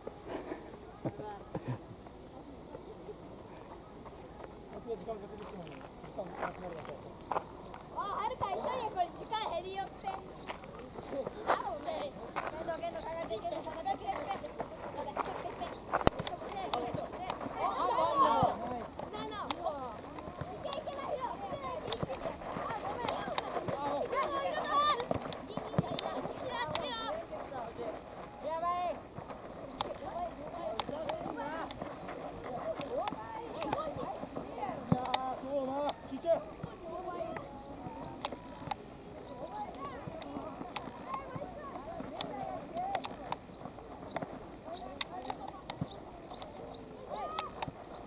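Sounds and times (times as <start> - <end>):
boys shouting: 16.6 - 29.0.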